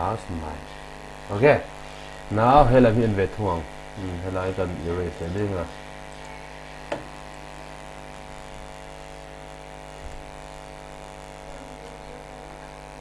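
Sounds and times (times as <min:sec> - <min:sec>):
steady electrical hum: 0:00.0 - 0:13.0.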